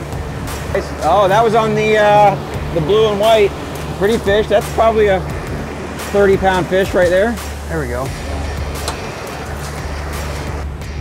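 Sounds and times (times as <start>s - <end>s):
outboard boat engines rumbling: 0.0s - 11.0s.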